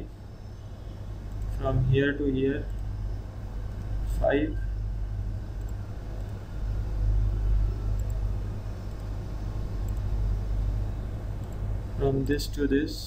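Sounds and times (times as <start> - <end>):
low rumble and hum: 0.0 - 13.0.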